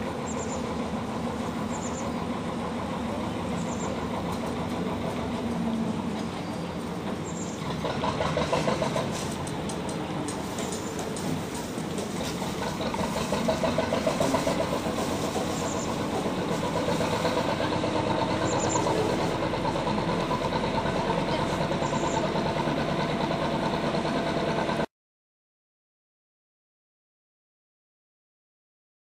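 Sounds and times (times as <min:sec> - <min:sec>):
diesel boat engine running: 0:00.0 - 0:24.9.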